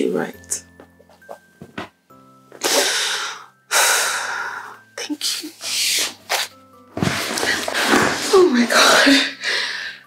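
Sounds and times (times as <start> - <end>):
person breathing heavily: 2.6 - 4.8, 8.7 - 10.0.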